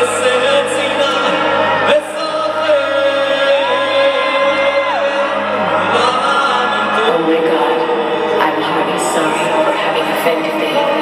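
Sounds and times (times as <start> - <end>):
choir singing long notes: 0.0 - 9.3.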